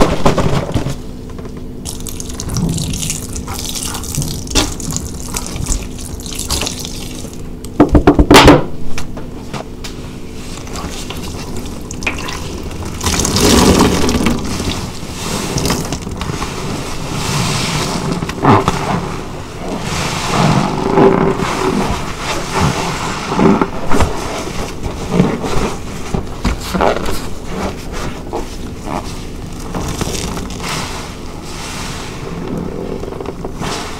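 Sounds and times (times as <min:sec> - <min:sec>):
sponge squelching in foam: 0:01.8 - 0:07.5, 0:10.2 - 0:23.6, 0:26.6 - 0:32.8.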